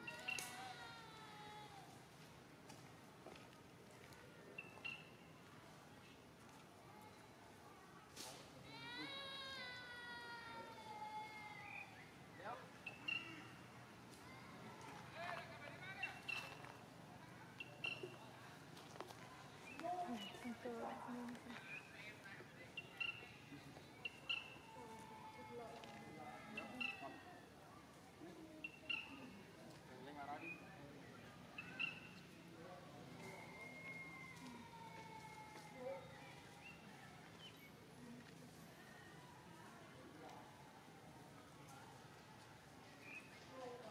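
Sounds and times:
faint voices: 0.0 - 43.9.

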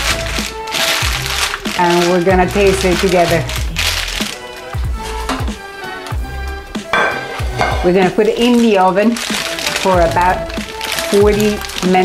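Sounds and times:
parchment paper rustling: 0.0 - 5.2, 7.9 - 12.0
background music: 0.0 - 12.0
glass dish knocking on counter: 7.0 - 7.9.

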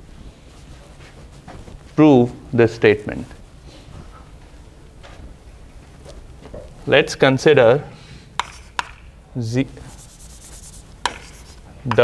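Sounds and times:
chalk scratching on blackboard: 8.4 - 9.0, 9.7 - 12.0
chalk tapping on board: 8.4 - 9.0, 9.9 - 12.0.

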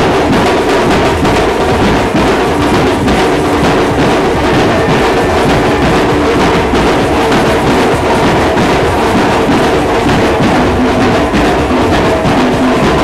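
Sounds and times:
held notes: 0.0 - 13.0
loud drums and percussion: 0.0 - 13.0.

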